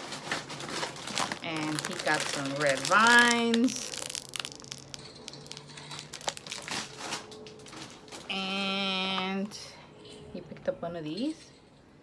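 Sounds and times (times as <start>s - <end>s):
plastic bag crinkling: 0.0s - 8.4s.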